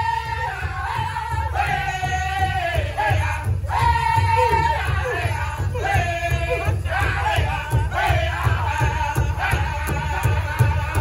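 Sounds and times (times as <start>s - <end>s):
group singing in high voices: 0.0s - 11.0s
large drum steady beat: 0.0s - 11.0s.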